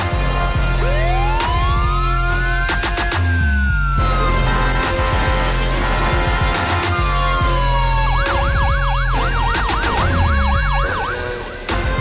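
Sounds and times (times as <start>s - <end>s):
theme music with bass beat: 0.0s - 12.0s
siren yelping wail: 7.3s - 12.0s.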